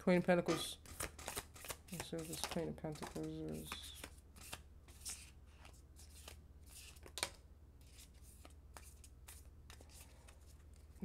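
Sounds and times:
cards being shuffled: 0:00.5 - 0:11.0
cards snapping: 0:00.8 - 0:07.4.

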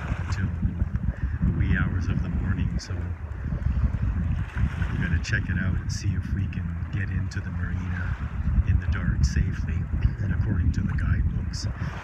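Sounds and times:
sea washing around hull: 0:00.0 - 0:12.0
wind buffeting microphone: 0:00.0 - 0:12.0.

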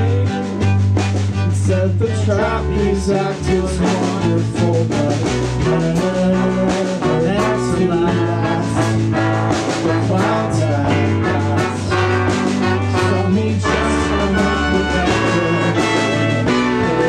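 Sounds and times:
drums: 0:00.0 - 0:17.0
electric guitar: 0:00.0 - 0:17.0
keyboard: 0:00.0 - 0:17.0
trombone: 0:00.0 - 0:17.0
trumpet: 0:00.0 - 0:17.0.

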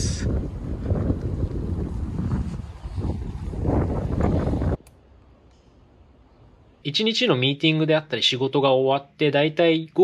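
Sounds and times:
wind buffeting microphone: 0:00.0 - 0:04.8.

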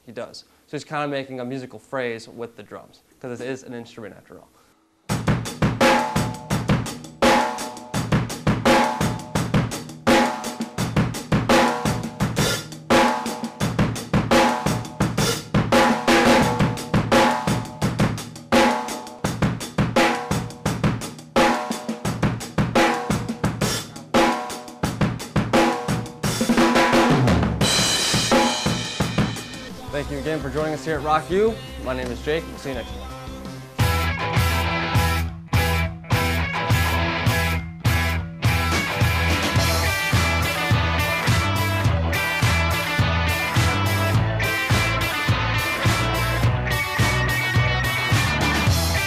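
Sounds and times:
drum kit playing rock groove: 0:05.1 - 0:49.0.

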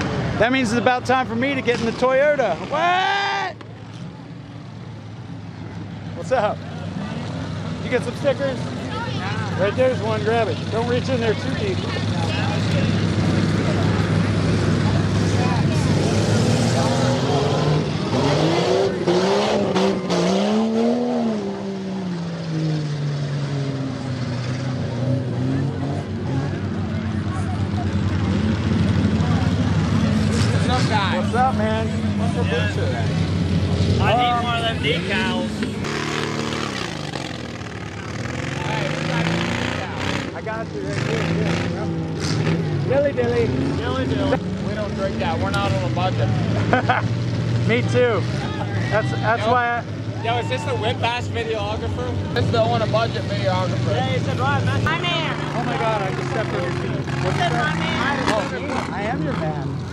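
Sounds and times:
people talking: 0:00.0 - 0:03.8, 0:06.1 - 0:19.9, 0:24.5 - 0:59.8
truck engines revving: 0:00.0 - 0:59.9.

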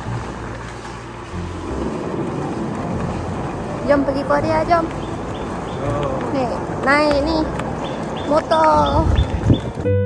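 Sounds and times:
rolling road noise: 0:00.0 - 0:10.0
wind rumbling on microphone: 0:00.0 - 0:10.0.

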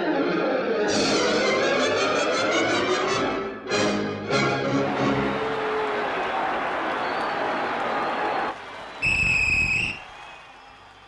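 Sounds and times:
referee's whistle: 0:07.0 - 0:10.8.

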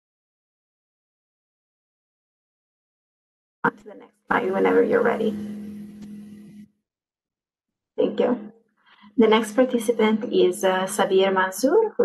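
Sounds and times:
microphone hum and hiss: 0:03.7 - 0:06.6.

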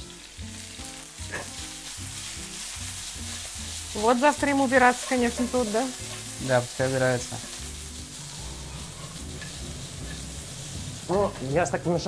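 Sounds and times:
onion sizzling in hot oil: 0:00.0 - 0:12.0.

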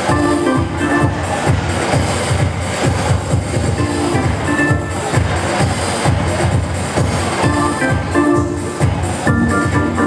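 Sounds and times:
funk keyboard instrumental: 0:00.0 - 0:02.6, 0:03.3 - 0:10.0
bass line of low notes: 0:00.0 - 0:10.0.

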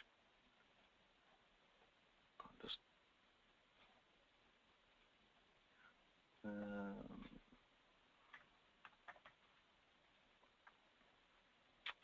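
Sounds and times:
computer mouse and keyboard clicks: 0:08.3 - 0:09.5.

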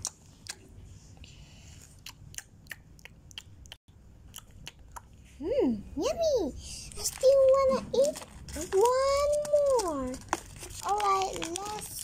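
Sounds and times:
child making eating clicks: 0:00.0 - 0:00.7, 0:01.9 - 0:05.2.

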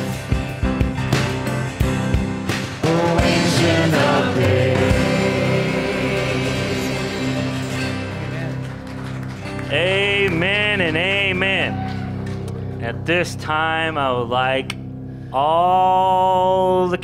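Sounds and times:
acoustic guitar: 0:00.0 - 0:13.0
person singing: 0:02.8 - 0:08.5
sustained chord: 0:02.8 - 0:11.7.

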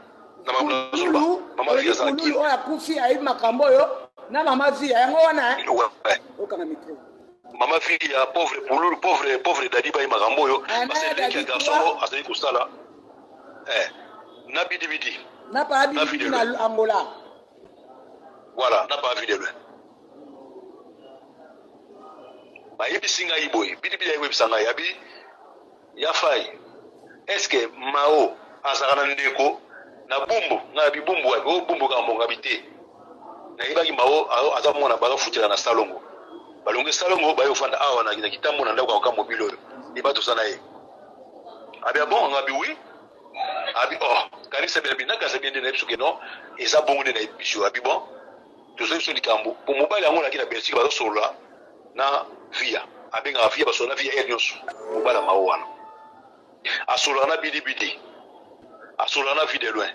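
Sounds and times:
person talking: 0:10.7 - 0:12.0, 0:54.7 - 0:56.2
person speaking: 0:54.6 - 0:56.3.

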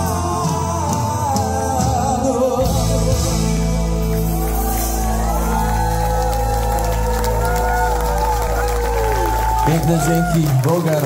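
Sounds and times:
live heavy metal band: 0:00.0 - 0:10.6
crowd cheering: 0:04.0 - 0:11.0.

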